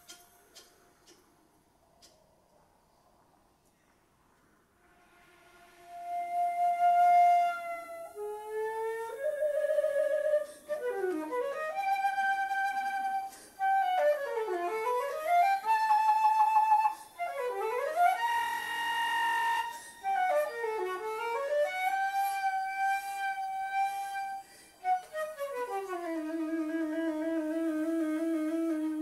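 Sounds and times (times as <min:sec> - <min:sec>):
concert flute playing: 0:05.0 - 0:29.0.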